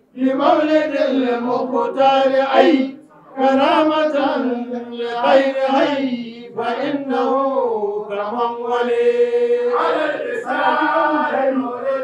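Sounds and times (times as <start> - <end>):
man chanting: 0.1 - 12.0.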